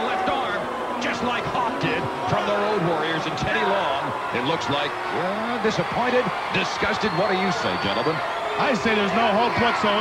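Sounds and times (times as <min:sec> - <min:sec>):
men commentating: 0:00.0 - 0:10.0.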